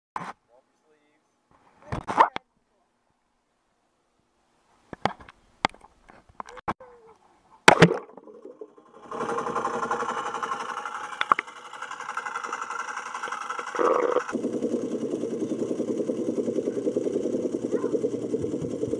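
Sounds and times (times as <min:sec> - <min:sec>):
splash into pool: 0:07.6 - 0:08.4
muffled underwater rushing: 0:07.7 - 0:10.6, 0:12.0 - 0:18.9.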